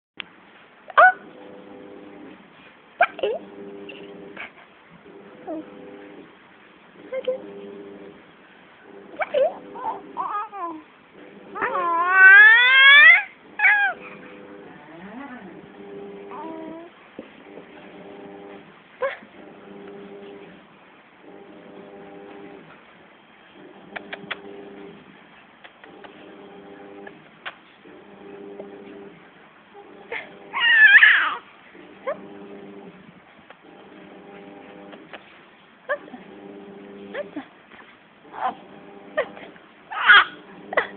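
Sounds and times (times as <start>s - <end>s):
baby cooing and squealing: 9.2s - 10.8s, 11.6s - 14.0s, 16.3s - 16.9s, 30.5s - 31.4s, 39.9s - 40.4s.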